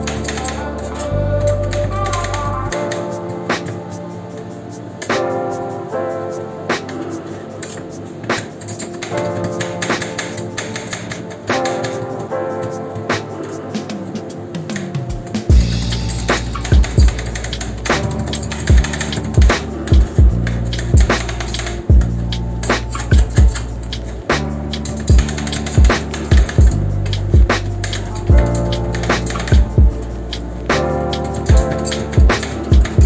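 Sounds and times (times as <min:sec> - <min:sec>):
background music: 0:00.0 - 0:33.0.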